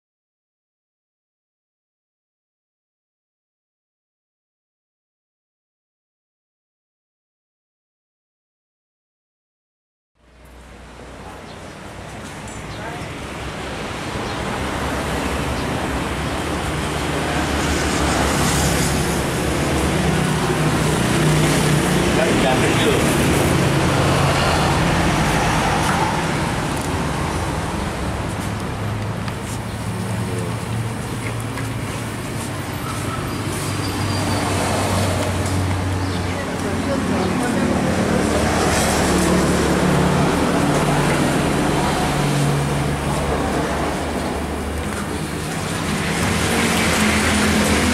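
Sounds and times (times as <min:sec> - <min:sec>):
street traffic passing: 0:10.2 - 0:47.9.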